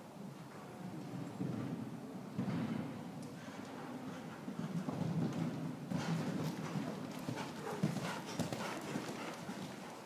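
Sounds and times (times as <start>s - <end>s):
horse hoofbeats on sand: 2.4s - 9.9s.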